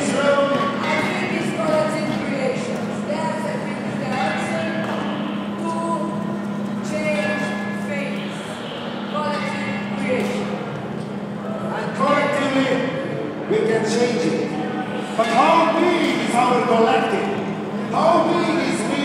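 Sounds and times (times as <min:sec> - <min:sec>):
electric fans humming: 0:00.0 - 0:19.0
voices making drawn-out sounds: 0:00.0 - 0:19.0.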